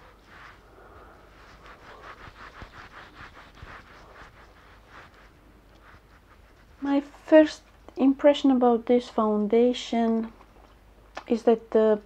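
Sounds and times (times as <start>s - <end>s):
fingertips rubbing on skin: 0.0s - 8.0s.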